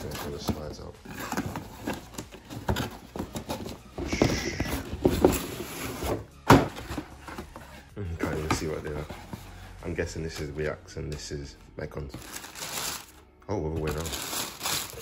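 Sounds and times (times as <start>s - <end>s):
cardboard boxes scraping and rustling: 0.0s - 10.5s.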